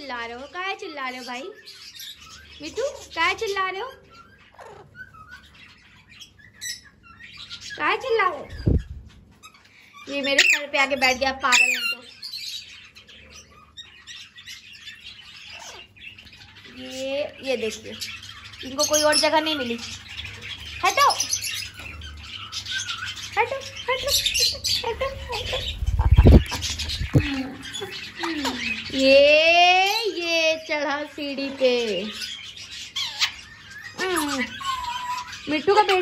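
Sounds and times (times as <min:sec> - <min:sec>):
parakeet chirping: 0:00.0 - 0:36.0.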